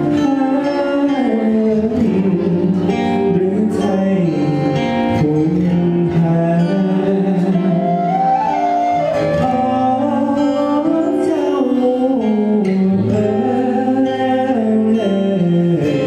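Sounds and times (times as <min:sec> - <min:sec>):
acoustic guitar: 0:00.0 - 0:16.0
man singing a slow ballad: 0:00.0 - 0:16.0.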